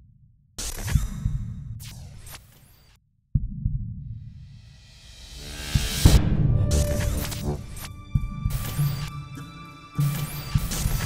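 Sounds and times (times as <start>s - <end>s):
deep heartbeat-like thumps: 3.3s - 4.6s, 5.8s - 8.8s
sudden low hit: 5.4s - 8.5s.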